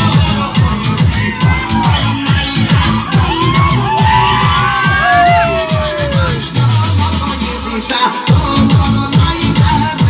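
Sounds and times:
loud dance music: 0.0s - 10.0s.

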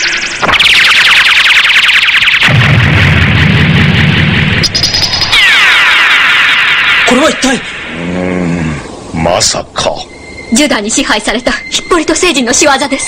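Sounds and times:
electronic warble of falling chirps: 0.0s - 8.2s
slow falling electronic sweeps: 0.0s - 8.8s
low rumble: 2.5s - 5.4s.

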